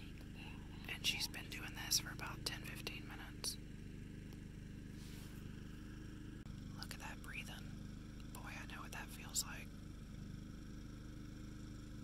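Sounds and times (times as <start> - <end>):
low electrical hum: 0.0 - 12.0
person whispering: 0.8 - 3.6, 6.8 - 7.6, 8.3 - 9.7.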